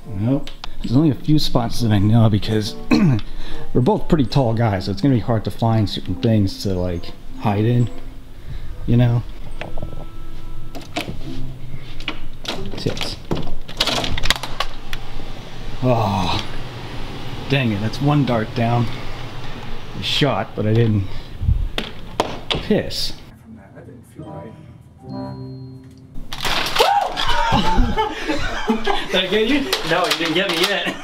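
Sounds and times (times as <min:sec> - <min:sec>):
closet door pushed open: 0:12.0 - 0:19.5
startled yelling: 0:26.7 - 0:28.0.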